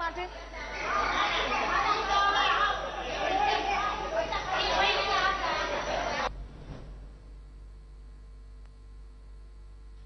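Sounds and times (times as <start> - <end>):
people talking at once: 0.0 - 6.3.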